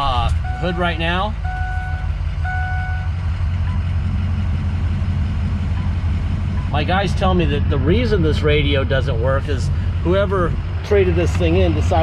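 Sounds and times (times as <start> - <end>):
diesel engine idling: 0.0 - 12.0
dashboard warning chime: 0.3 - 4.1, 5.6 - 6.9.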